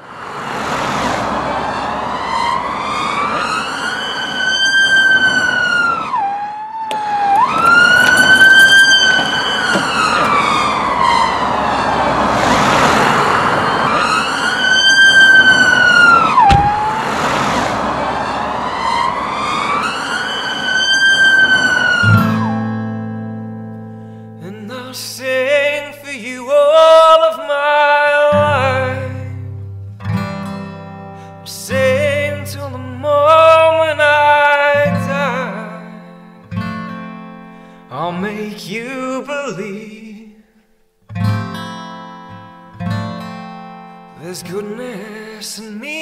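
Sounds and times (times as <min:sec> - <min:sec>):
siren wailing: 0:00.0 - 0:23.1
steady rushing noise: 0:09.1 - 0:20.7
sharp thump: 0:16.4 - 0:17.8.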